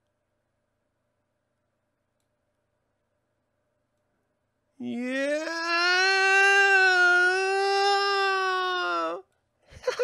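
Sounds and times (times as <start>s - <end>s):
person yelling: 4.8s - 9.2s.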